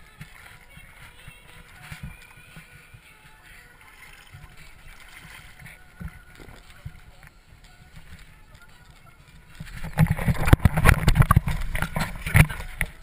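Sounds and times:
camera knocks and thuds: 9.8s - 13.0s.

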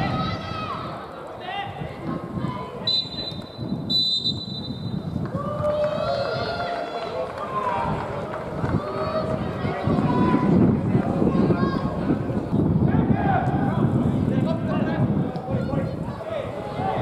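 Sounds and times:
stadium crowd murmur: 0.0s - 17.0s
referee's whistle blasts: 2.8s - 5.0s.

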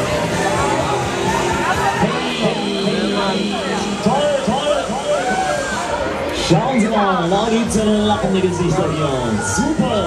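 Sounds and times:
riders screaming and shouting: 0.0s - 6.6s, 8.2s - 10.0s
fairground din: 0.0s - 10.0s.

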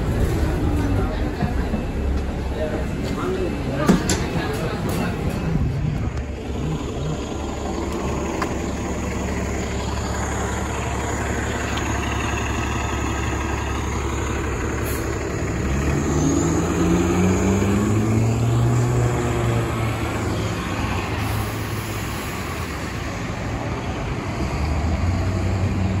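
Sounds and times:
bus engine accelerating: 0.0s - 26.0s
street traffic rumble: 0.0s - 26.0s.

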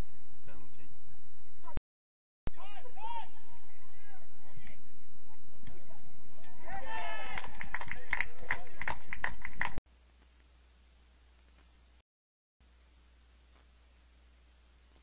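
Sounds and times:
people shouting and cheering: 2.5s - 4.7s, 5.7s - 8.9s
faint field ambience hiss: 9.9s - 12.0s, 12.6s - 15.0s.

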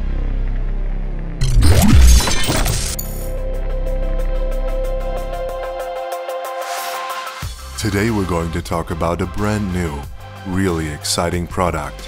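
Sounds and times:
shattering crash with deep boom: 1.4s - 3.2s
electronic music: 1.4s - 3.3s.

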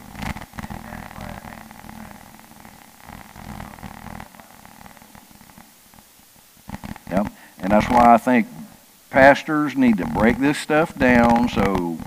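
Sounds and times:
faint muffled person speaking: 0.6s - 2.4s, 3.4s - 5.2s.

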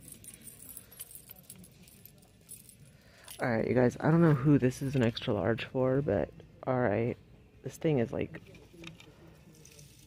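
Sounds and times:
clothes hangers jingling on rack: 0.0s - 5.2s.

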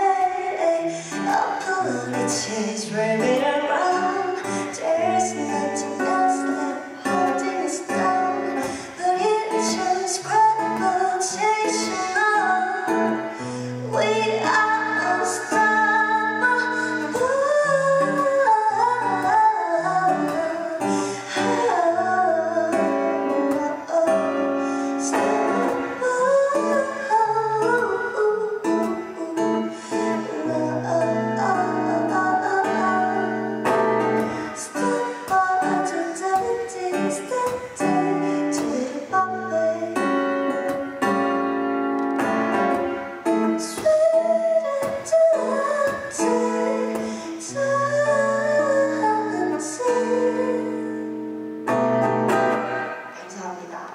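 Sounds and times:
acoustic guitar: 0.0s - 53.9s
woman singing: 0.0s - 53.9s.

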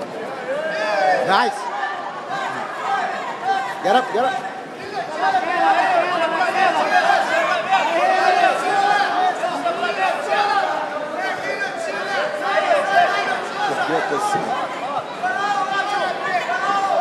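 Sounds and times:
crowd talking and shouting: 0.0s - 17.0s.

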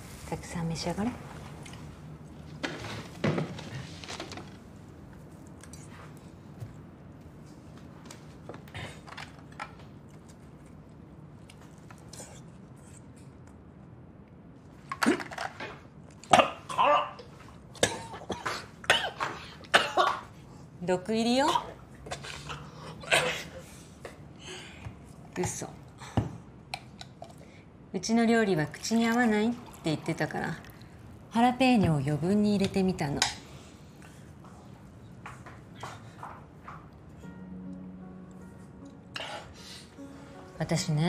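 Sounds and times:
man coughing hard: 17.8s - 20.2s.

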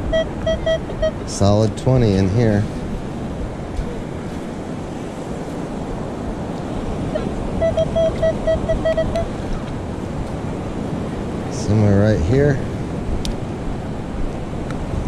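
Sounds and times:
metal detector beeps: 0.0s - 1.4s, 7.1s - 9.3s
wind on microphone: 0.0s - 15.0s.

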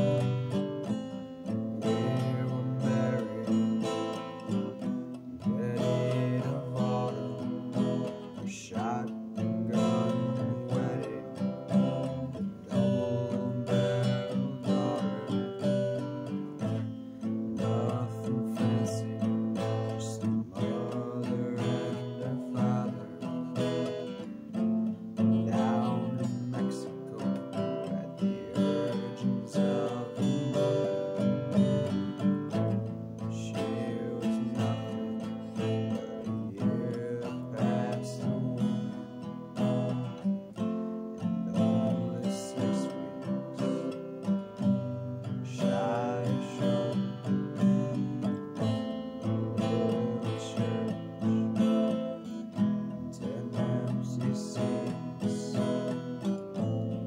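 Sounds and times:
guitar strummed and picked: 0.0s - 57.0s.

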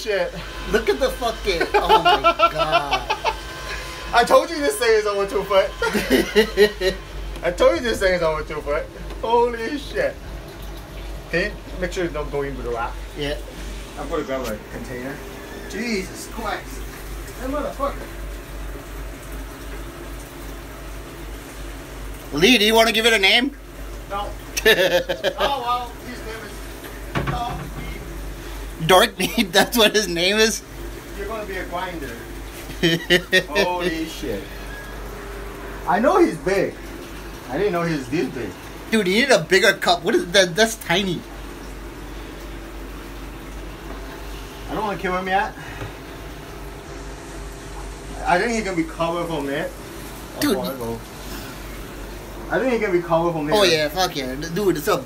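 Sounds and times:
pump low hum: 0.0s - 55.0s
running water: 0.0s - 55.0s.

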